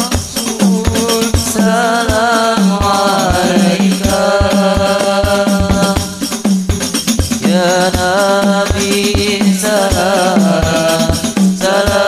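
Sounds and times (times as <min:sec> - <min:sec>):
man singing into a microphone: 0:00.0 - 0:06.4, 0:07.4 - 0:12.0
frame drums struck by hand: 0:00.0 - 0:12.0.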